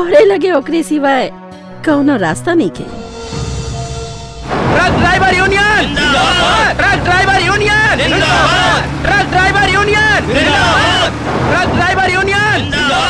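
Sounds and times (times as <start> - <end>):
engines running low rumble: 4.4 - 13.0
crowd of men chanting slogans: 4.9 - 11.9.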